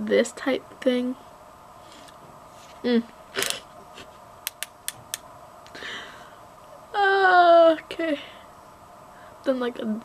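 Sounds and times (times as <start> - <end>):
faint steady hum: 0.0 - 10.0
noisy rustle: 1.2 - 5.6.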